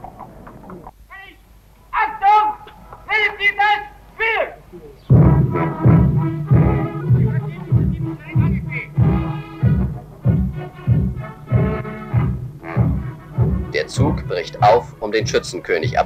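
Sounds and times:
bass drum beat: 5.1s - 16.0s
wind instruments: 5.1s - 16.0s.

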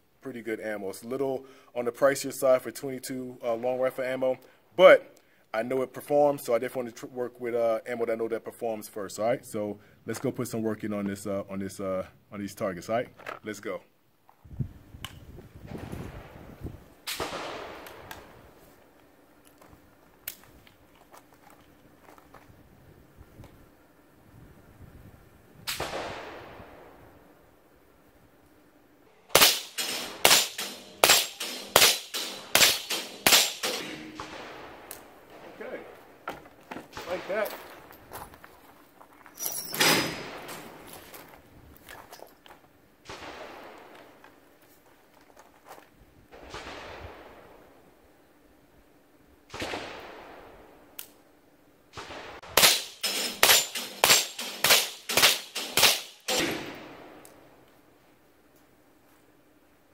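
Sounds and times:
rifle gunshots: 17.1s - 18.4s, 25.7s - 27.0s, 29.3s - 36.0s, 43.1s - 44.2s, 46.4s - 47.8s, 49.5s - 50.8s, 51.9s - 57.2s.

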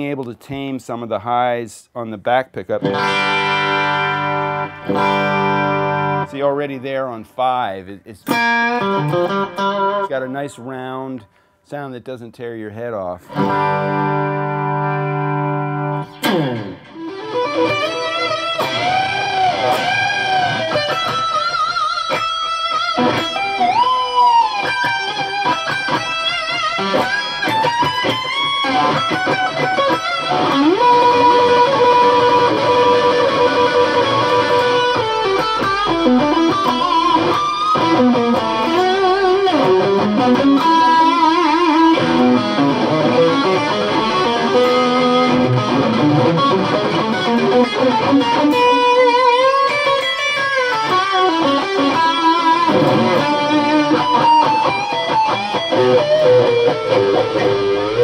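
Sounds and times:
electric guitar rock lead: 2.8s - 6.8s, 8.2s - 10.6s, 13.2s - 58.0s.

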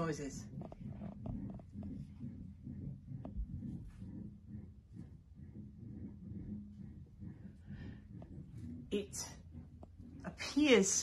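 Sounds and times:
low uneven rumble: 0.0s - 11.0s
steady hum: 0.0s - 11.0s.

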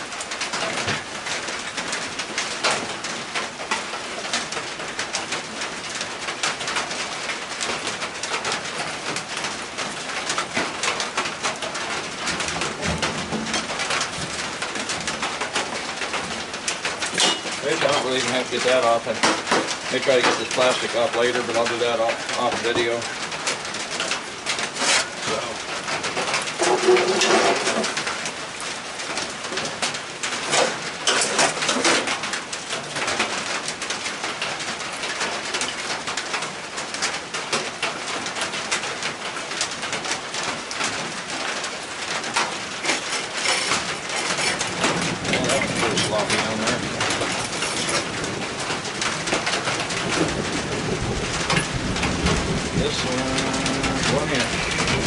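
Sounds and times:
rain pattering: 0.0s - 55.0s.

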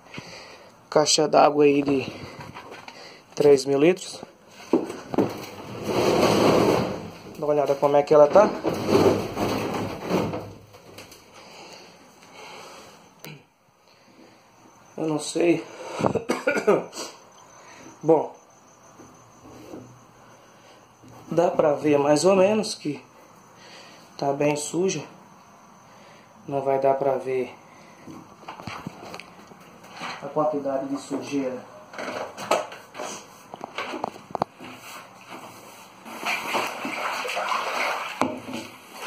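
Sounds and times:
water sloshing in a tank: 34.8s - 39.0s.

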